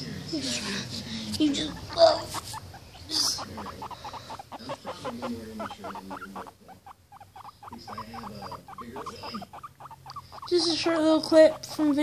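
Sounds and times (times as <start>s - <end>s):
guinea pig squeaking: 1.3s - 12.0s.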